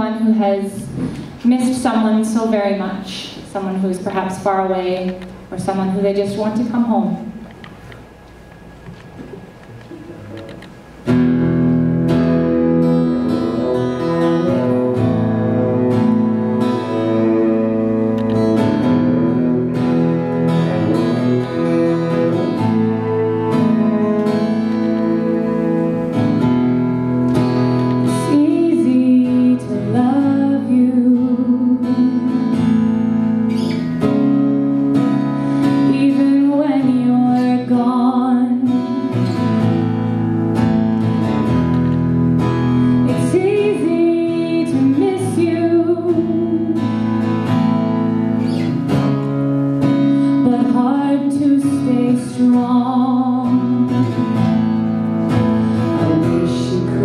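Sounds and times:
acoustic guitar: 0:00.0 - 0:57.0
cello bowing long notes: 0:11.2 - 0:37.7.

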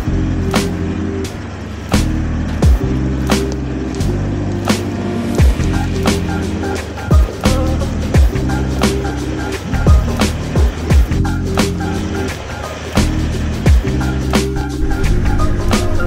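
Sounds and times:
sustained synth chords: 0:00.0 - 0:16.0
drum hits: 0:02.6 - 0:02.9, 0:05.4 - 0:09.0.

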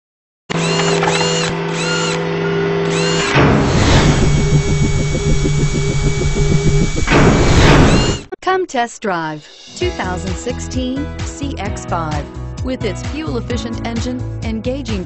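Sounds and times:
fast mechanical pulse: 0:00.5 - 0:08.3
steady electronic drone: 0:00.5 - 0:08.3
rising swoosh: 0:03.3 - 0:08.3
sudden whoosh: 0:03.3 - 0:08.3.

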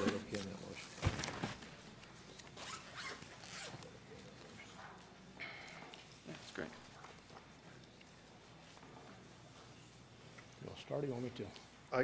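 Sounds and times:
rustling and scraping handling noises: 0:00.0 - 0:05.0, 0:05.7 - 0:12.0.

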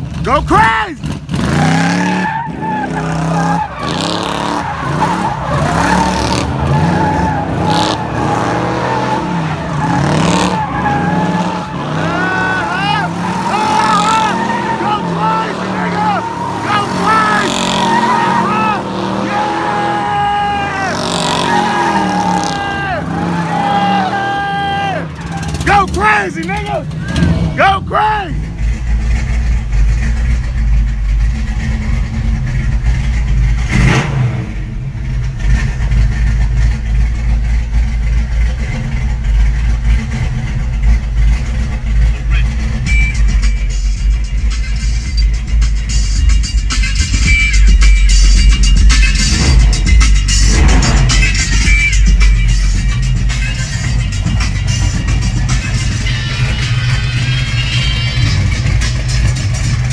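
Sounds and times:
car engine revving: 0:00.0 - 0:59.9
tyres squealing: 0:00.3 - 0:28.4
deep engine rumble inside car: 0:26.4 - 0:59.9.

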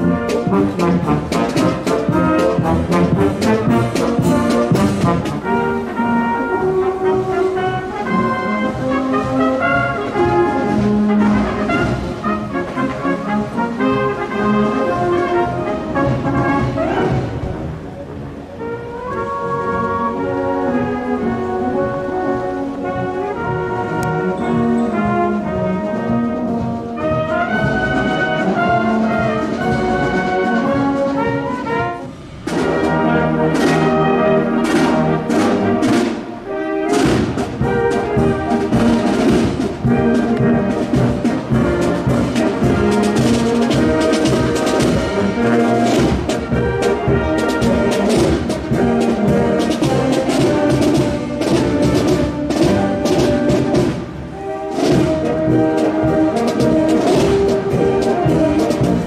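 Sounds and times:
drums beating: 0:00.0 - 0:05.8, 0:32.4 - 0:59.0
brass band playing: 0:00.0 - 0:59.0.

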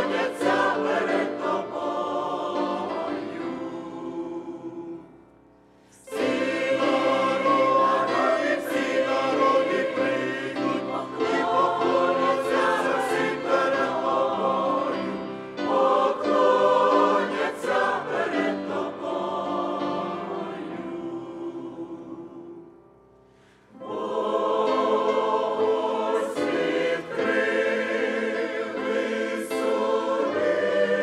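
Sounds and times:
mixed choir singing a hymn: 0:00.0 - 0:31.0.

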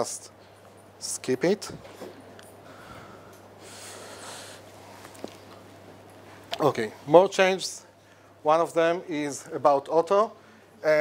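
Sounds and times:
low electrical hum: 0:00.0 - 0:11.0
person breathing near microphone: 0:02.6 - 0:05.0.

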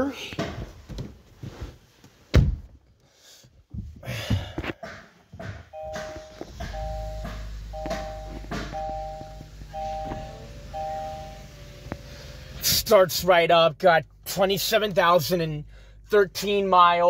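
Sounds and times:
car engine starting and idling: 0:05.6 - 0:17.0
dashboard warning chime: 0:05.7 - 0:12.6.

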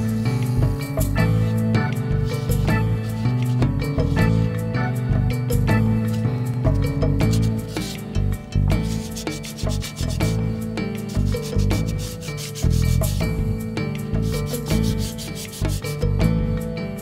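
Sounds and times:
background music with plucked notes: 0:00.0 - 0:17.0
hand sanding a shell: 0:02.2 - 0:04.5, 0:07.2 - 0:08.1, 0:08.8 - 0:13.2, 0:14.2 - 0:16.0.

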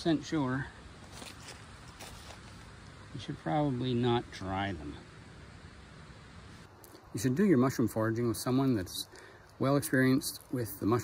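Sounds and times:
outdoor background hiss: 0:00.0 - 0:11.0
soft ticks and rustles: 0:08.6 - 0:11.0.

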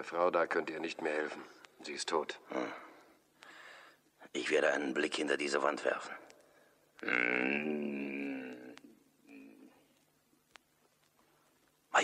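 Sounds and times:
man growling like a bear: 0:07.0 - 0:08.8.

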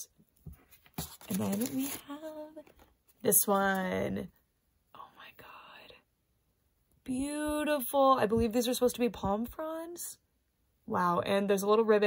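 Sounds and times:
woman whispering: 0:04.9 - 0:06.1.

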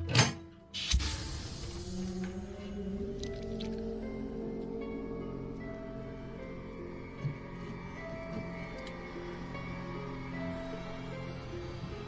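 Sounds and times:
low film score tones: 0:00.7 - 0:12.0.

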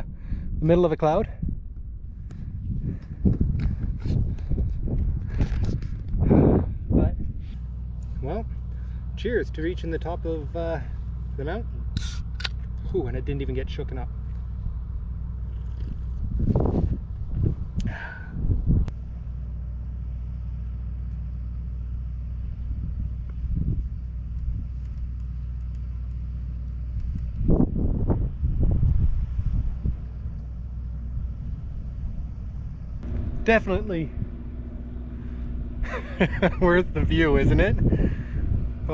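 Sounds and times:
wind rumbling on microphone: 0:00.0 - 0:19.2, 0:22.3 - 0:38.9.

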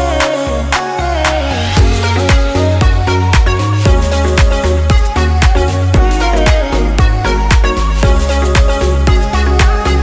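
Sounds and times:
background music with drum beat: 0:00.2 - 0:10.0.

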